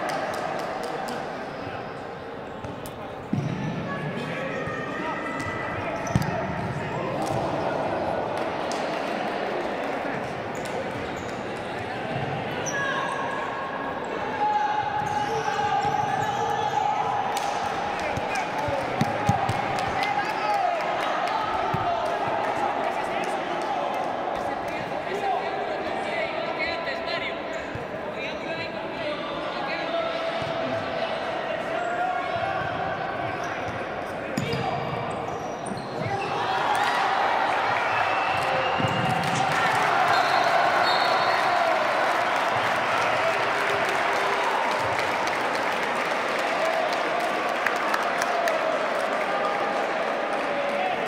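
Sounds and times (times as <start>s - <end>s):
players shouting in echoing hall: 0.0s - 51.0s.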